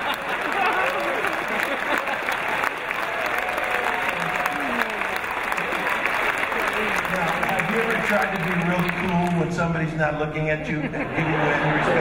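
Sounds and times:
audience applauding: 0.0s - 9.7s
crowd voices: 0.0s - 12.0s.

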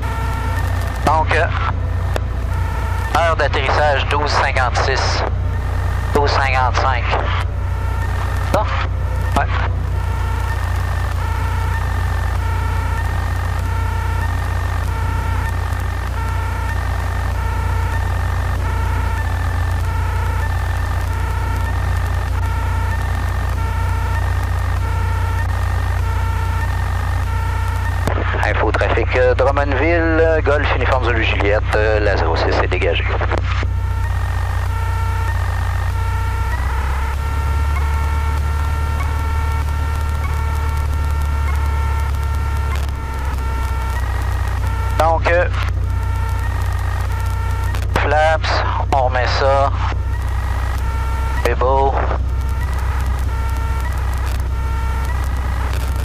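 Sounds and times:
propeller aircraft engine droning: 0.0s - 56.0s
radio voice transmission: 0.0s - 56.0s.

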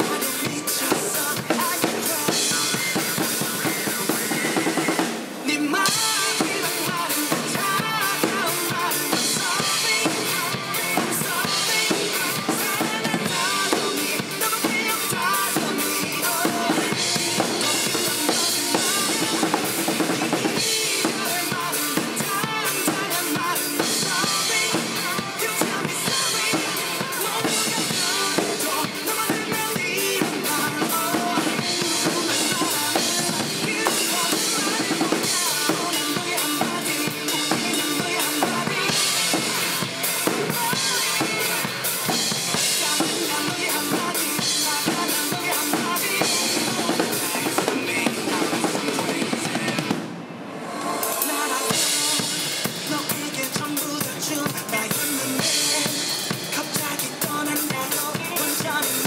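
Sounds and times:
drum kit played hard: 0.0s - 59.0s
rock music over loudspeaker: 0.0s - 59.0s.

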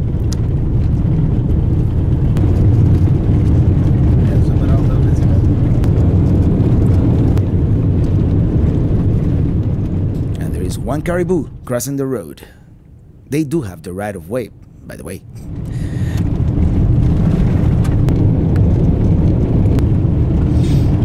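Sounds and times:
vehicle engine and tyre rumble: 0.0s - 21.0s
faint gravel clicks: 0.1s - 11.8s, 15.6s - 21.0s.

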